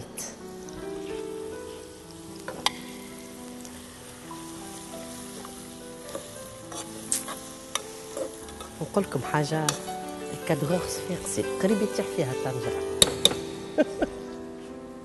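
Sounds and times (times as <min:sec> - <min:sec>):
onions and octopus sizzling in oil: 0:00.0 - 0:15.0.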